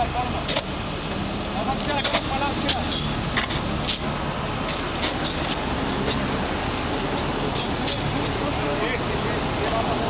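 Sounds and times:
rumble of vehicles: 0:00.0 - 0:10.0.

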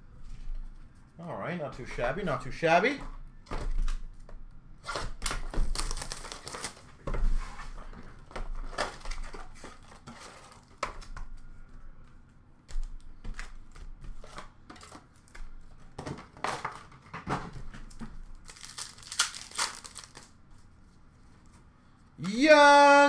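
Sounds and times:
cardboard and wrapper rustling: 0:04.8 - 0:11.0, 0:13.3 - 0:21.6.

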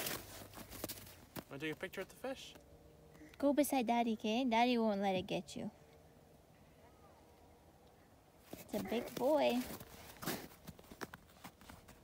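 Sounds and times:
footsteps crunching on snow: 0:00.0 - 0:01.9, 0:08.4 - 0:12.0.

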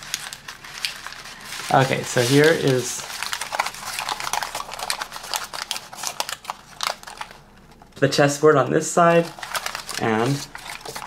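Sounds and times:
folded paper crinkling: 0:00.0 - 0:08.4, 0:09.0 - 0:11.0.

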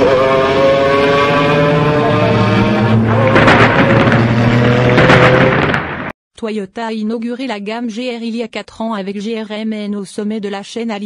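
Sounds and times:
thunder crackling and rumbling: 0:03.0 - 0:06.1.

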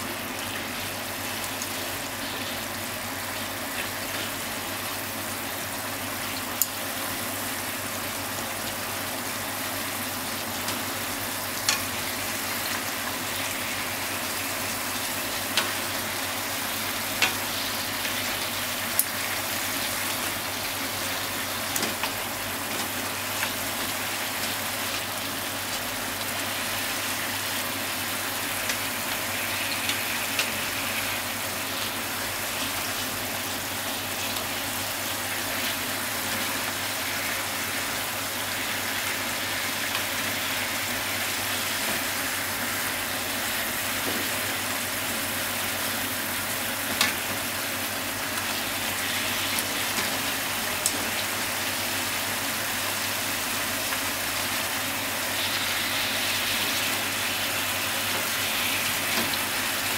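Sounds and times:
radish slices sizzling in a pan: 0:00.0 - 0:59.9.

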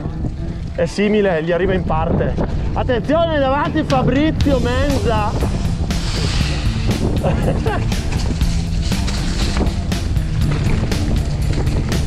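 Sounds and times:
background rock music: 0:00.0 - 0:12.0
mountain bike rattling on dirt trail: 0:00.0 - 0:12.0
wind on microphone: 0:00.0 - 0:12.0.

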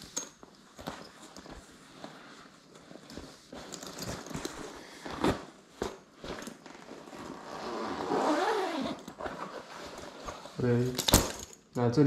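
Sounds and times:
zipper being pulled open: 0:06.2 - 0:10.6.

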